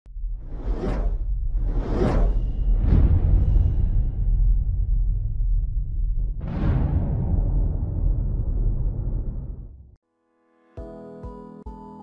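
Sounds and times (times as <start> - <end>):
steady low rumble: 0.1 - 10.0
whooshes: 0.2 - 9.8.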